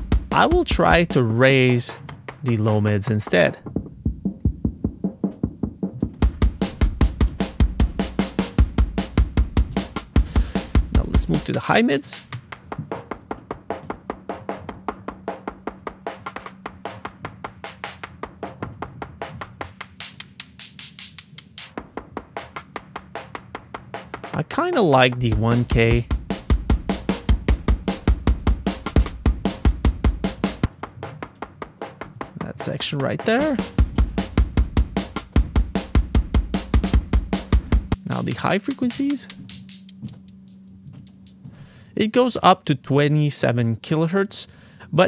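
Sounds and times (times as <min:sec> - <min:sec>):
drum machine clicks: 0:00.0 - 0:41.9.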